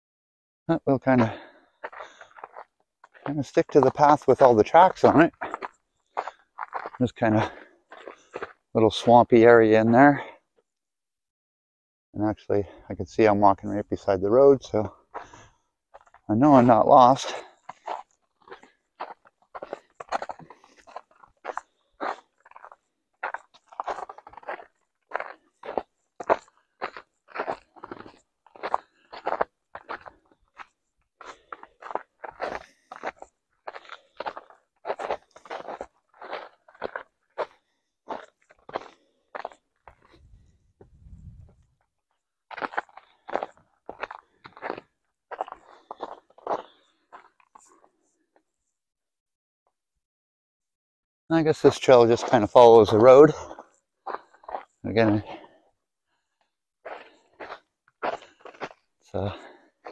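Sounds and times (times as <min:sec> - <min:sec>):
footsteps crunching through snow and leaves: 0:01.8 - 0:09.1, 0:17.2 - 0:40.3, 0:42.5 - 0:47.9, 0:56.9 - 0:58.8.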